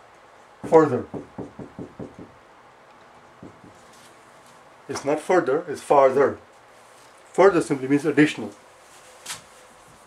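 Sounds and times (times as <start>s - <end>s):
marker writing on whiteboard: 3.4s - 4.0s.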